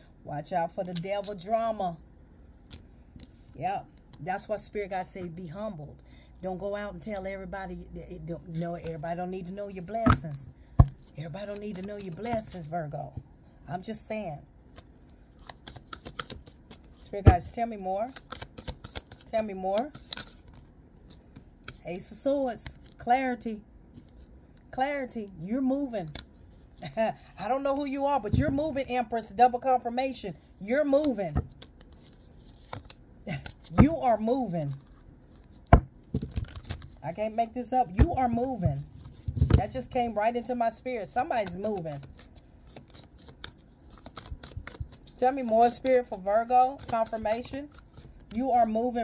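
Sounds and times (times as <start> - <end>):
cards being shuffled: 8.4 - 12.7, 14.7 - 21.8, 30.8 - 37.1, 41.0 - 49.0
cards clicking and flicking: 14.8 - 16.9, 18.1 - 20.4, 41.4 - 45.5.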